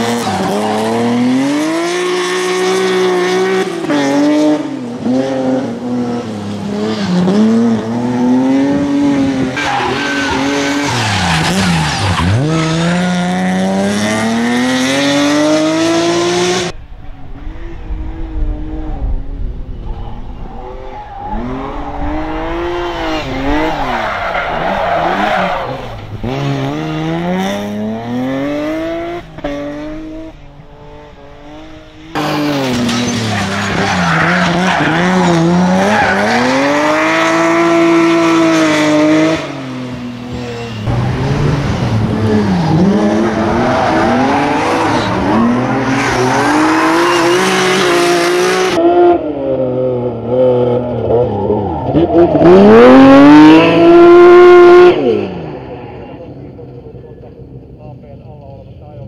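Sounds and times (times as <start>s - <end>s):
car engine revving: 0.0s - 58.4s.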